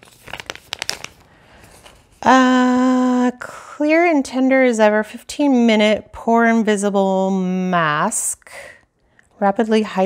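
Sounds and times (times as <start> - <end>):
packaging crinkling: 0.0 - 2.2.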